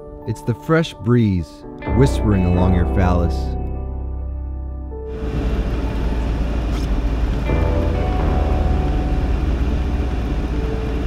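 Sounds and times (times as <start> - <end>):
background music: 0.0 - 11.0
car driving noise from inside: 5.1 - 11.0
deep low rumble: 5.1 - 11.0.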